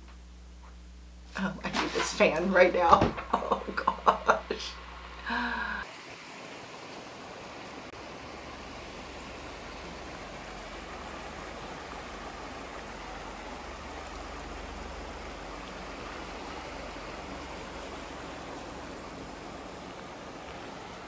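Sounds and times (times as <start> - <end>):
creek running: 1.5 - 21.0.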